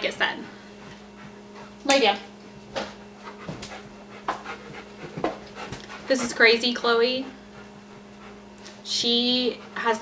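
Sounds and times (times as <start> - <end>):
dog panting: 0.0 - 1.9, 3.0 - 10.0.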